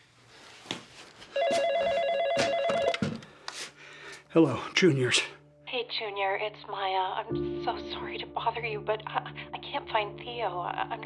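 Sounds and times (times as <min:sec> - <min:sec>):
telephone ringing: 0:01.4 - 0:03.2.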